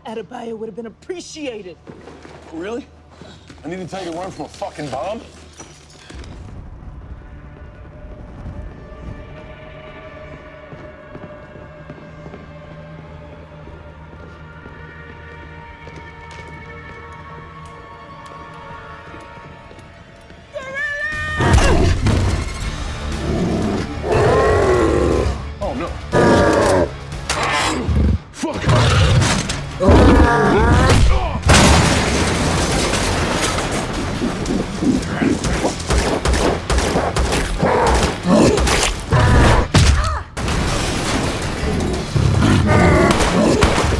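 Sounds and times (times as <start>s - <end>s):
tense film score drone: 0.0s - 31.6s
crashing and sharp hits: 30.9s - 42.4s
rapid gunshots: 35.4s - 39.0s.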